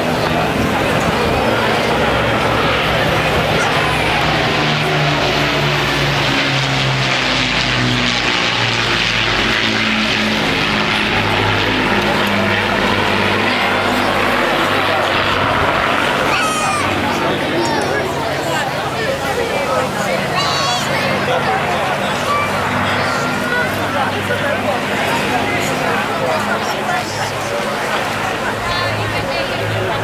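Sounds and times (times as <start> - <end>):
propeller aircraft droning: 0.0 - 30.0.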